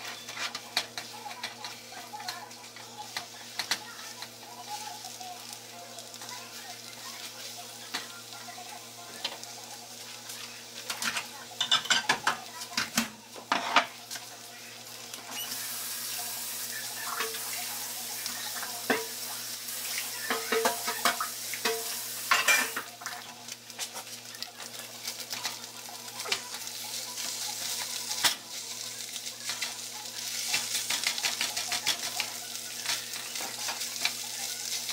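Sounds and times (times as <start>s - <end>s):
utensil clicking on pan: 0.3s - 4.3s, 29.4s - 34.9s
spatula scraping frying pan: 13.4s - 14.0s.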